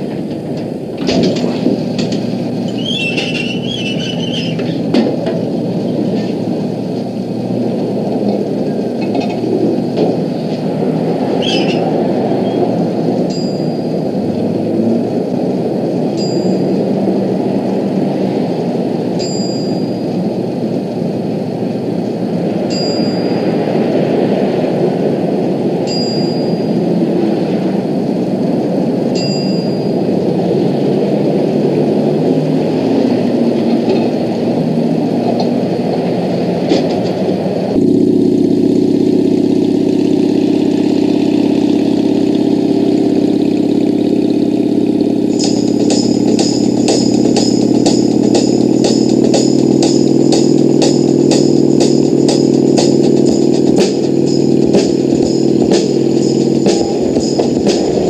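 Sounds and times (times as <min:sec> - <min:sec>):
engine running: 0:00.0 - 0:58.0
gas pump bell dinging: 0:00.4 - 0:07.6, 0:08.4 - 0:21.5, 0:22.4 - 0:24.9, 0:25.5 - 0:31.5, 0:37.8 - 0:58.0
music with held notes: 0:45.3 - 0:58.0
tambourine-like beat: 0:45.4 - 0:58.0.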